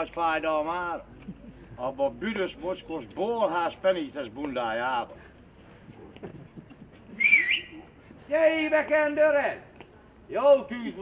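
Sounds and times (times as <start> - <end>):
man whistling: 7.1 - 7.8.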